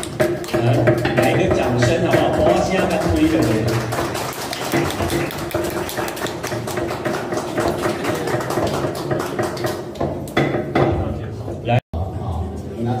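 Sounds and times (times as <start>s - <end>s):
mallets tapping chisels into wood: 0.0s - 3.5s, 9.1s - 11.0s.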